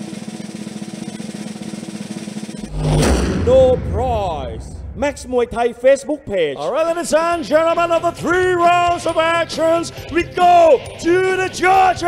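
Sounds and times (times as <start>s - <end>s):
crash hit with low boom: 2.6s - 6.1s.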